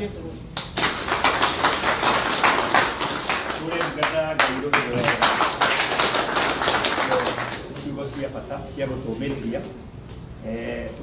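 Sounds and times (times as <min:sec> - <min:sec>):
people clapping: 0:00.6 - 0:08.4.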